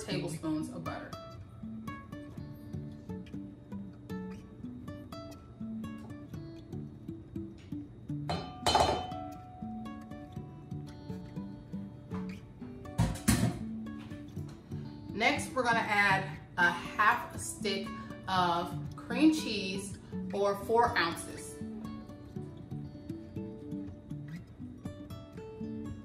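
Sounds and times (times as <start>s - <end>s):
plucked guitar music: 0.0s - 26.0s.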